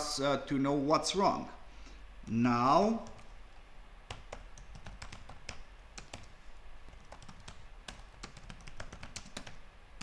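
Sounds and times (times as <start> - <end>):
computer keyboard typing: 3.0 - 3.4, 4.1 - 9.6.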